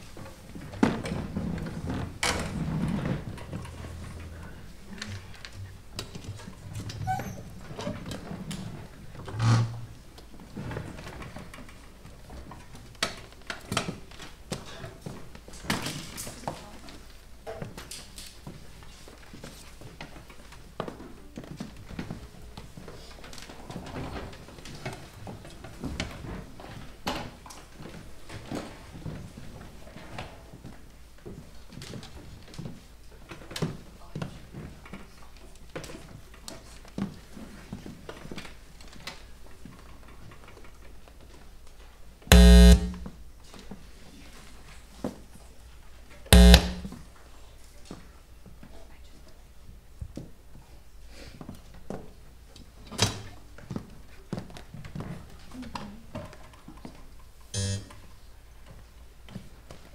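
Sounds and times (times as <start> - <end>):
loud electric buzz: 42.3 - 43.1, 46.4 - 46.9, 57.6 - 58.0.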